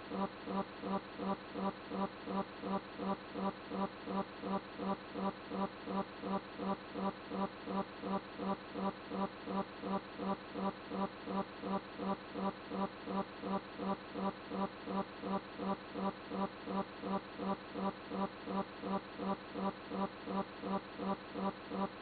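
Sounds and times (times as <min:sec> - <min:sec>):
pulsing buzzing hum: 0:00.0 - 0:22.0.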